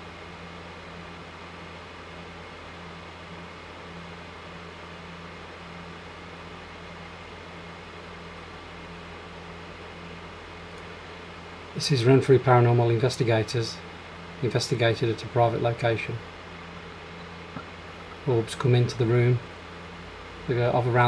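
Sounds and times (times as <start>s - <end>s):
constant hiss: 0.0s - 21.0s
steady low hum: 0.0s - 21.0s.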